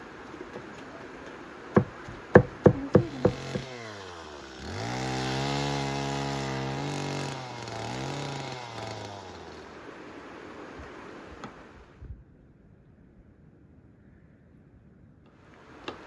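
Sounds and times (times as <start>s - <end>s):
chainsaw cutting log: 0.6s - 9.9s
knife chopping on wooden board: 1.8s - 3.7s.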